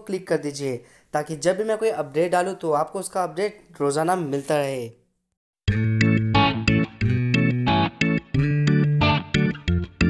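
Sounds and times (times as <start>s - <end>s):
bass line: 5.7s - 10.0s
rhythmic guitar strokes: 5.7s - 10.0s.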